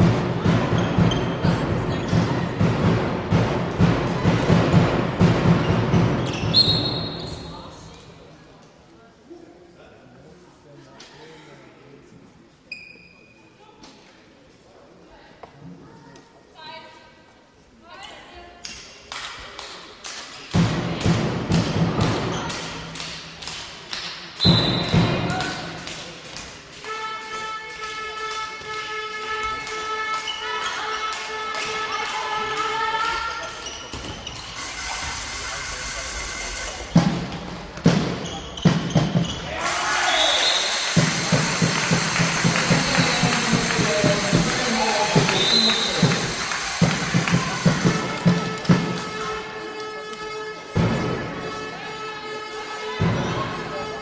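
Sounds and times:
spectators beating a rhythm: 0:00.0 - 0:06.6, 0:20.4 - 0:30.2, 0:34.3 - 0:49.4
hollow thuds in a sports hall: 0:37.0 - 0:39.6.

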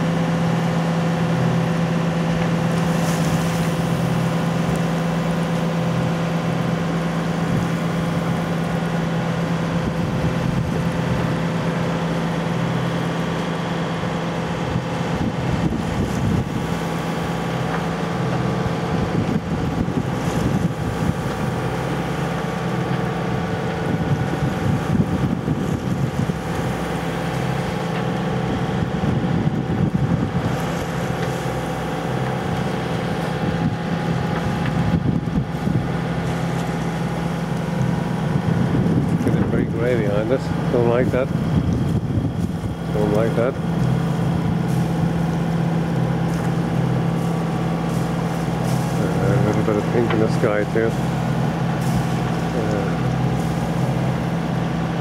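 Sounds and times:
boat engine running: 0:00.0 - 0:55.0
wind rumble on microphone: 0:00.0 - 0:55.0.

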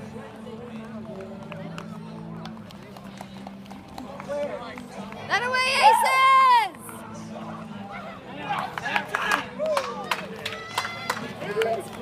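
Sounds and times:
murmur of voices: 0:00.0 - 0:12.0
loud celebratory shout: 0:05.5 - 0:06.7.

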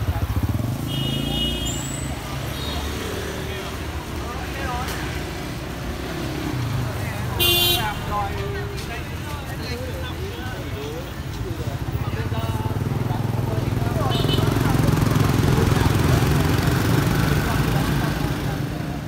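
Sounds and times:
engine rumble of traffic: 0:00.0 - 0:19.0
vehicle horn honking: 0:00.8 - 0:02.0, 0:07.4 - 0:08.1.

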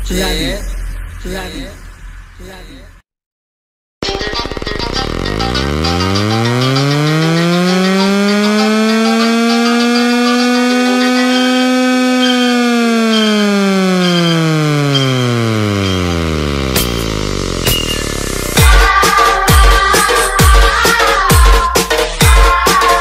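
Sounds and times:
electronic sliding tone effect: 0:04.1 - 0:19.4.

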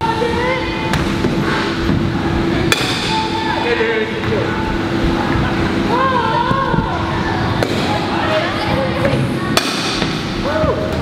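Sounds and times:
voices chattering: 0:02.0 - 0:11.0
bat hitting baseball: 0:02.7 - 0:03.2.

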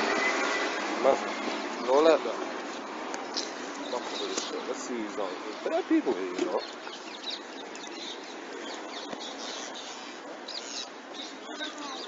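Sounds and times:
birds chirping: 0:00.0 - 0:12.0
outdoor background hiss: 0:00.0 - 0:12.0.

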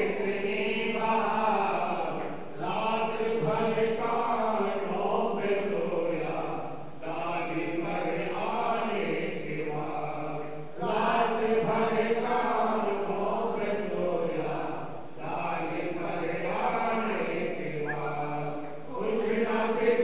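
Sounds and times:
devotional chant singing: 0:00.0 - 0:20.0.

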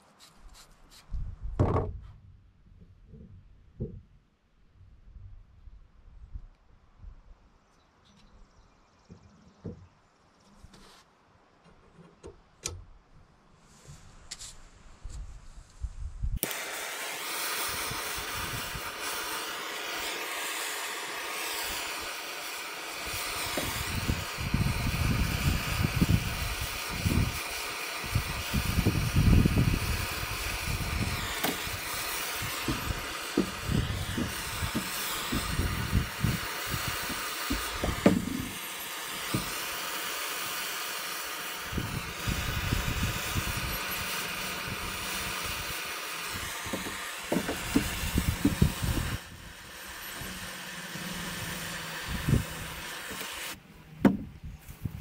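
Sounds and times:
propane torch hissing: 0:16.4 - 0:53.6.

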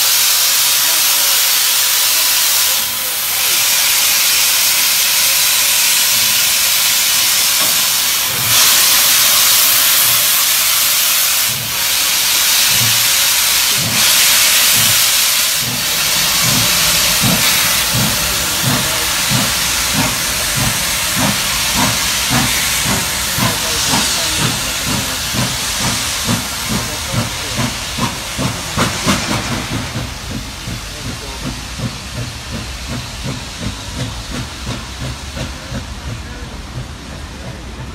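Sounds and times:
steam hissing: 0:00.0 - 0:37.9
steam locomotive chuffing: 0:00.0 - 0:37.9.

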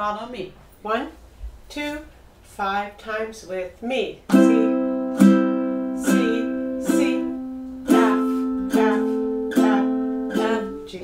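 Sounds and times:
ukulele strumming: 0:04.3 - 0:11.0.

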